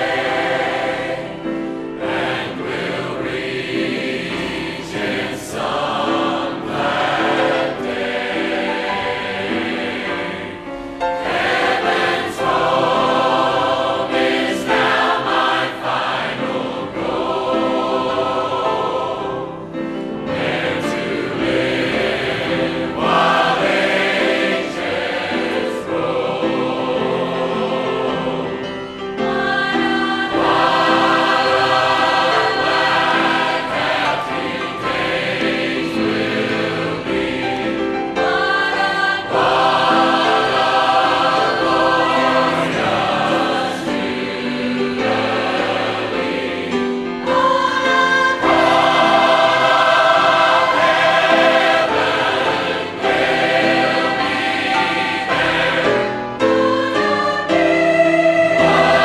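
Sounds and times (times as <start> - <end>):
choir singing gospel in harmony: 0.0 - 59.0
piano accompaniment: 0.0 - 59.0.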